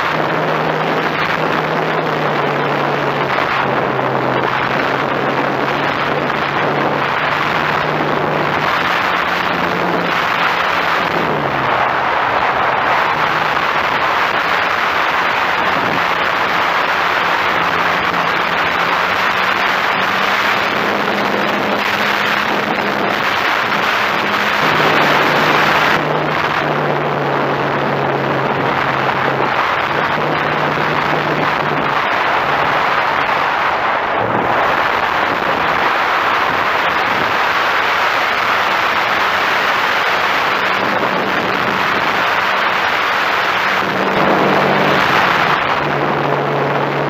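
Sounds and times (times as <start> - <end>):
rushing airflow noise: 0.0 - 47.0
model airplane motor and propeller: 13.0 - 32.2.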